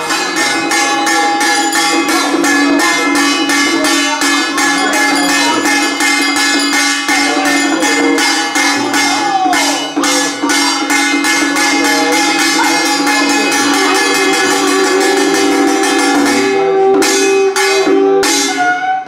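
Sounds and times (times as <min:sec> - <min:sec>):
hand drum beating: 0:00.0 - 0:18.9
sustained tones: 0:00.0 - 0:18.9
jingling percussion: 0:00.0 - 0:19.0.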